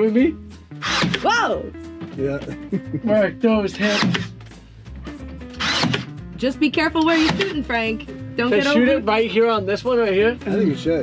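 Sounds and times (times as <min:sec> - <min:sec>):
background music: 0:00.0 - 0:11.0
nail gun firing into wood: 0:00.8 - 0:01.2, 0:03.8 - 0:04.3, 0:05.6 - 0:06.1, 0:07.1 - 0:07.6.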